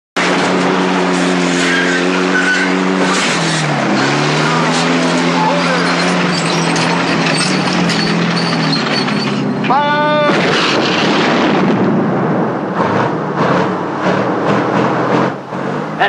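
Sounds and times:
tank engine droning: 0:00.2 - 0:16.0
tank tracks clattering: 0:04.4 - 0:09.7.

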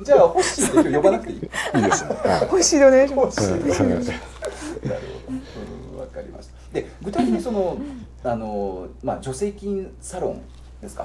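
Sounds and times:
people talking: 0:00.0 - 0:11.0
people laughing: 0:00.4 - 0:02.7, 0:07.1 - 0:07.8.

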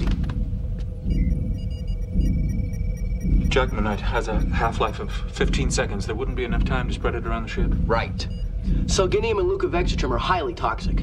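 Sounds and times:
low pulsing engine hum: 0:00.0 - 0:11.0
steady high electronic tone: 0:00.9 - 0:09.4
computer console beeps: 0:01.1 - 0:08.6.

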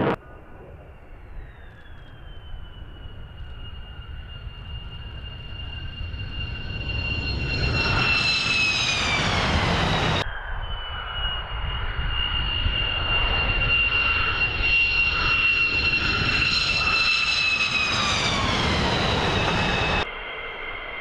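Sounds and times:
jet engines roaring at takeoff: 0:00.0 - 0:21.0.

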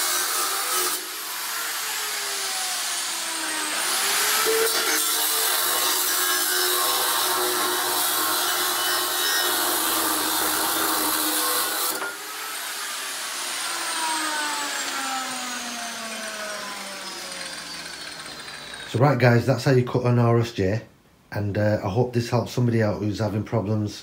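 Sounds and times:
grinder motor winding down: 0:00.0 - 0:08.2, 0:09.0 - 0:19.0
angle grinder cutting steel: 0:00.0 - 0:19.0.

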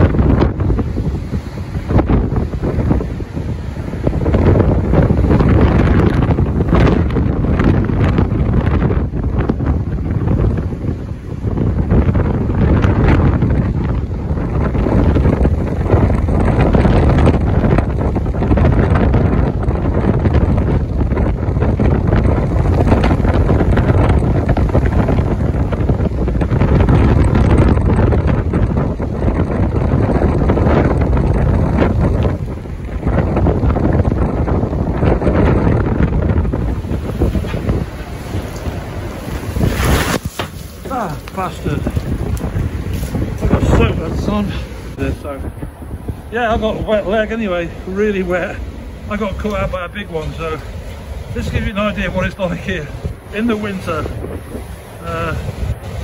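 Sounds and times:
storm surf breaking on sea wall: 0:00.0 - 0:56.0
wind buffeting microphone: 0:00.0 - 0:56.0.

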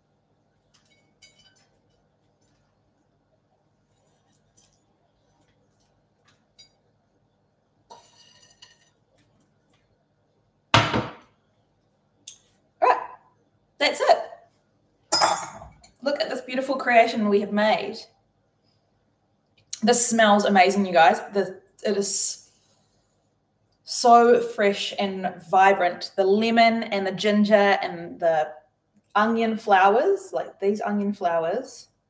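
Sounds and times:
woman's voice: 0:13.8 - 0:14.4, 0:16.0 - 0:18.1, 0:19.8 - 0:22.4, 0:23.9 - 0:28.5, 0:29.2 - 0:31.9.

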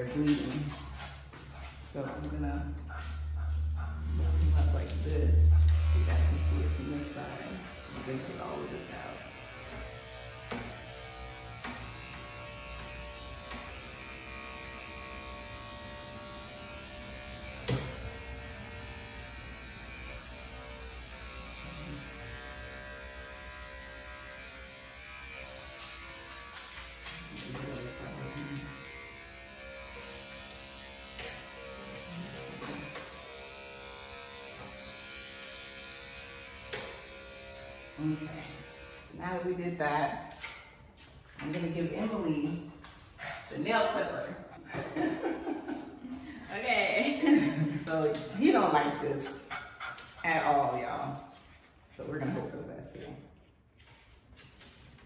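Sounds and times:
electric clippers running: 0:00.0 - 0:51.4.

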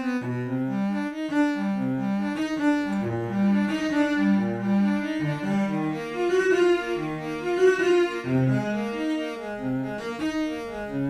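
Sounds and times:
cello playing legato melody: 0:00.0 - 0:11.0.

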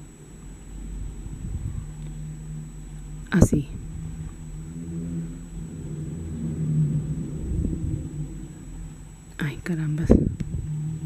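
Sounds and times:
engine running with low rumble: 0:00.0 - 0:11.0.

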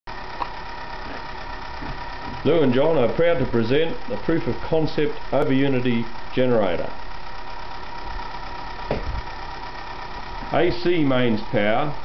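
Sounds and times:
motor-generator hum: 0:00.1 - 0:12.0
brief knock: 0:08.9 - 0:09.2.

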